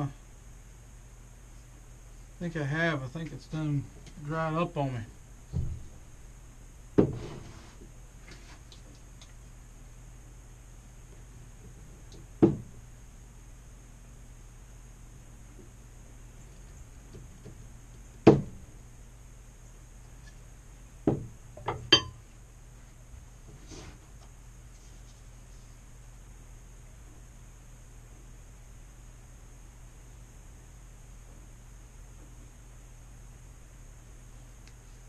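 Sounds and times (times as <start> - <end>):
steady low hum: 0.0 - 35.0
tools knocking and clinking: 21.6 - 22.2.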